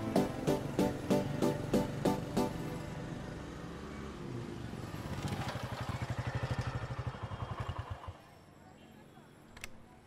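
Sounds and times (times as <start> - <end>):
motorcycle engine at low revs: 4.8 - 8.2.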